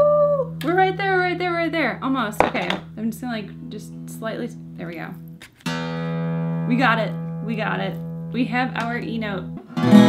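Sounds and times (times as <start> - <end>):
woman humming: 0.0 - 0.6.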